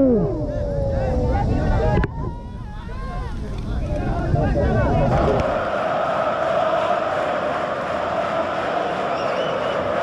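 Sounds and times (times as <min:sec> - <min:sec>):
crowd din: 0:00.2 - 0:10.0.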